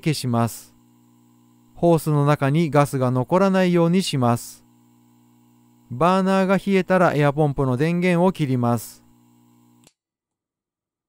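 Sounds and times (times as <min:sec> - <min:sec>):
faint electrical hum: 0:00.0 - 0:09.9.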